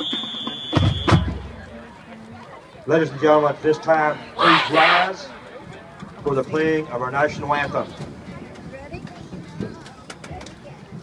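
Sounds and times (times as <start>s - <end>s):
stadium crowd murmuring: 0.0s - 11.0s
faint scattered voices: 1.1s - 11.0s.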